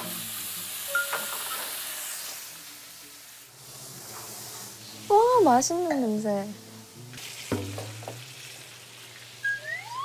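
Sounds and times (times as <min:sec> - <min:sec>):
rising comedy whistle: 0:09.4 - 0:10.0.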